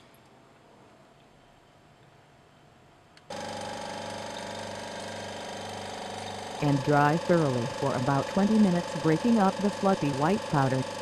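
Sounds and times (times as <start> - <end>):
vacuum pump humming: 3.3 - 11.0.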